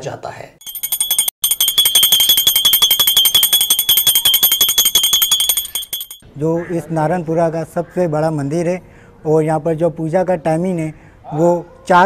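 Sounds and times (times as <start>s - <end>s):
small brass bell ringing rapidly: 0.6s - 6.2s.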